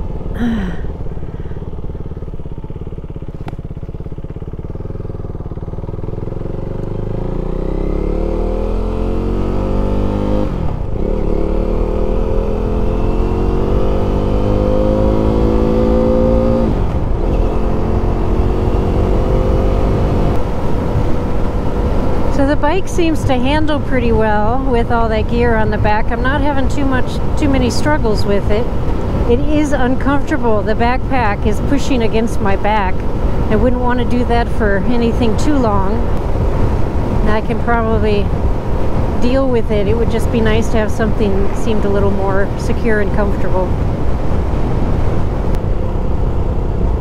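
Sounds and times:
motorcycle engine accelerating: 0.0s - 47.0s.

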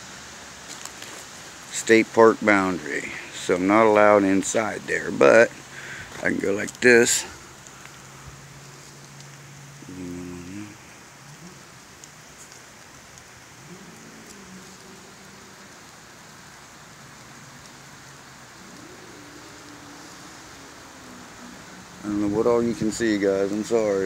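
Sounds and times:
light rain hiss: 0.0s - 24.0s
faint pitched sounds: 4.5s - 24.0s.

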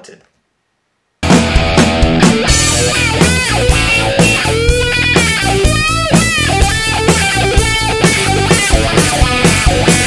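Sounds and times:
heavy metal band playing: 1.2s - 10.0s.

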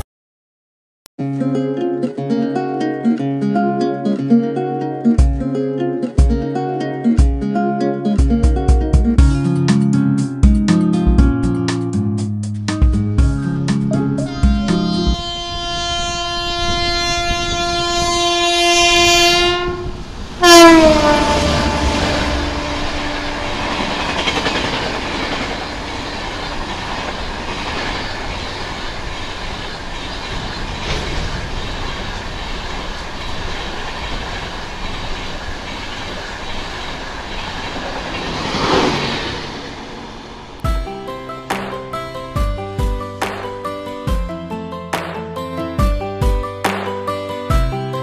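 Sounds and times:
train horn blasts: 14.2s - 27.6s
train wheels rumbling and clattering: 19.9s - 40.6s.

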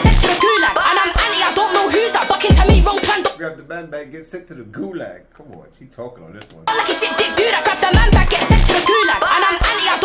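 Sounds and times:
rap music: 0.0s - 3.6s, 6.6s - 10.0s.

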